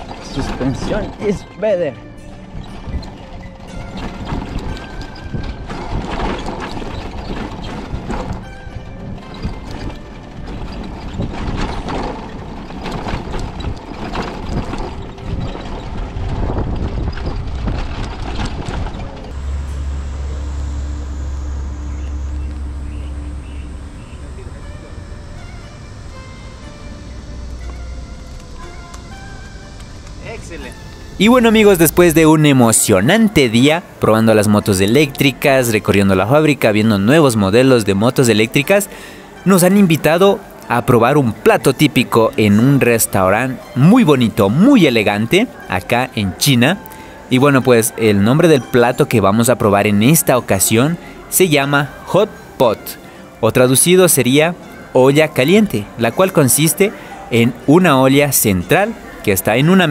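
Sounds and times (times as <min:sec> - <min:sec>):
low wind rumble: 0:00.0 - 0:47.3
wind on microphone: 0:02.5 - 0:24.6
motorcycle knocking and rattling: 0:02.6 - 0:19.4.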